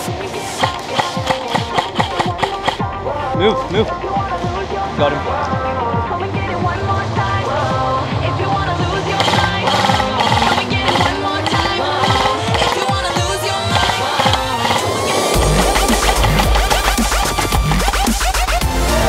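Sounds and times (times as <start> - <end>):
electronic dance music: 0.0 - 3.5, 8.9 - 19.0
rising synth sweep: 13.3 - 19.0
heavy bass drop: 15.3 - 19.0.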